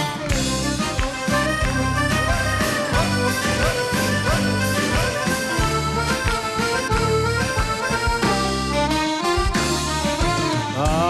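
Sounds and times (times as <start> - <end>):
band playing instrumental music: 0.0 - 11.0.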